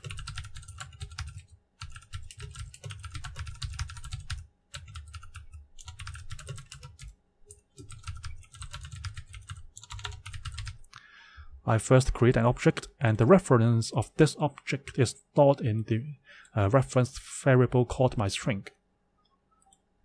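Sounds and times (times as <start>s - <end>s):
typing on computer keyboard: 0.0s - 10.8s.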